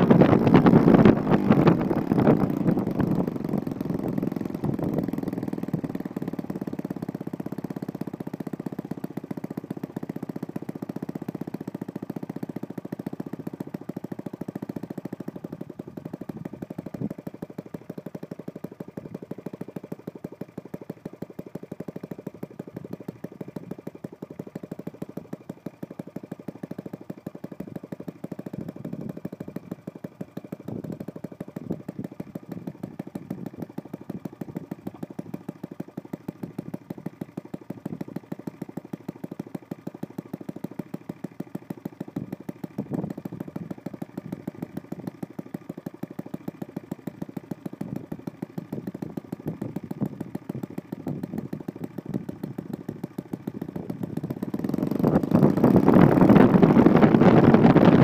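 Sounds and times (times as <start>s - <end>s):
model aircraft engine running: 0.0s - 58.0s.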